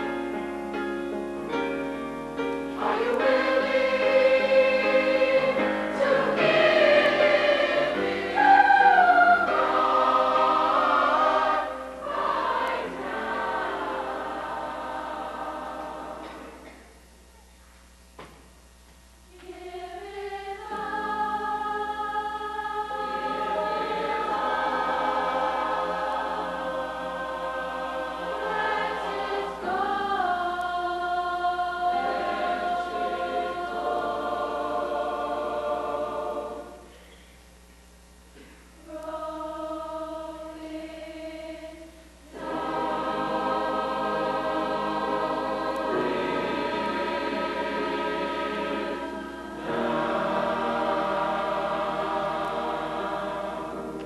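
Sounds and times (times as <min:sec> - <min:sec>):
choir singing in harmony: 0:00.0 - 0:16.8, 0:19.3 - 0:37.2, 0:38.4 - 0:54.0.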